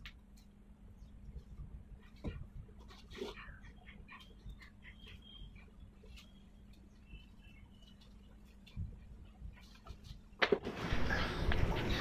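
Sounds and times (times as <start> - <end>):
small birds chirping: 0.2 - 12.0.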